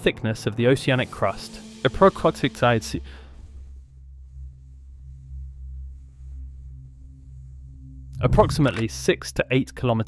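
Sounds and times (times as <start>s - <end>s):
low bass drone: 1.4s - 9.9s.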